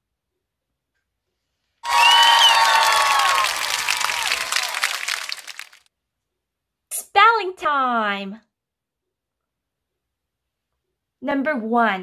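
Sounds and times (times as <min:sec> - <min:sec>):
people cheering: 0:01.8 - 0:05.8
applause: 0:01.8 - 0:05.9.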